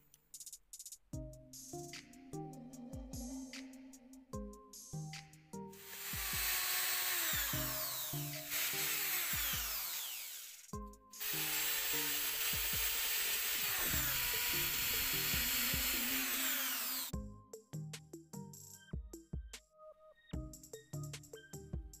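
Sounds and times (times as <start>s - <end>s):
power drill boring into resin: 5.8s - 17.1s.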